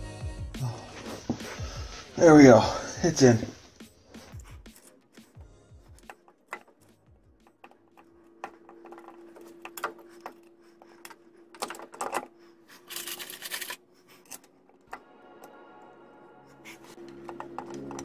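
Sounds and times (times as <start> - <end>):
hands clicking and tapping on metal: 4.2 - 12.3, 17.0 - 18.0
rustling scrape: 11.4 - 14.5.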